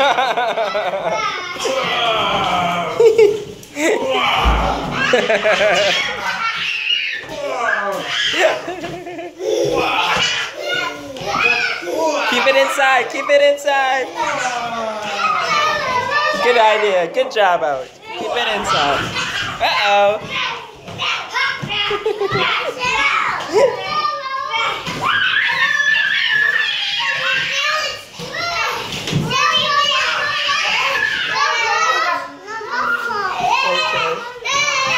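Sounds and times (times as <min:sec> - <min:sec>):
children squealing in play: 0:04.0 - 0:08.7, 0:09.4 - 0:12.7, 0:18.6 - 0:20.4, 0:23.6 - 0:34.9.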